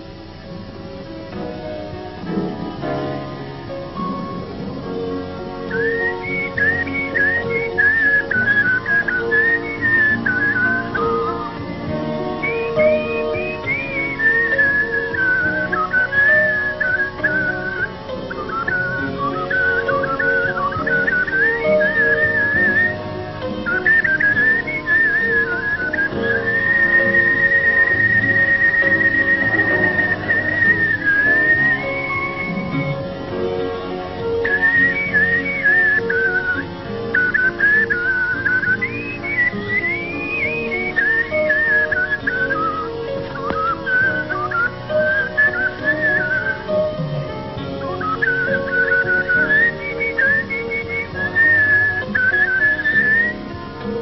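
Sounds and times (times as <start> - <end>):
instrumental accompaniment: 0.0 - 54.0
man whistling a melody: 5.6 - 33.0, 34.4 - 47.0, 47.6 - 54.0.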